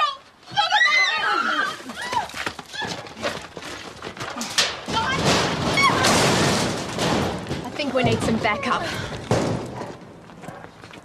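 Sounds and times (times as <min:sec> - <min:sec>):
knocks and bumps: 0:02.1 - 0:10.2.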